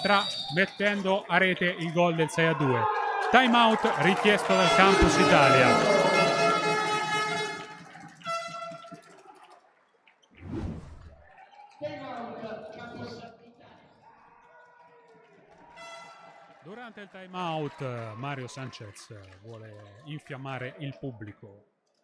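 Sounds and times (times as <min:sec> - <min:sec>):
horn steady tone: 0:04.3 - 0:09.0.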